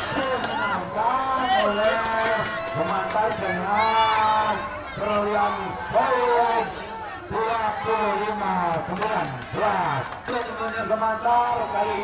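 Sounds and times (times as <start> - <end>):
men talking and calling out: 0.0 - 12.0.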